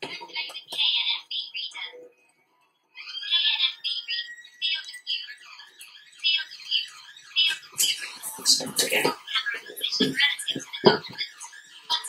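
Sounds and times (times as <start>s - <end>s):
synthetic voice from tinny speaker: 0.0s - 2.1s, 3.0s - 12.0s.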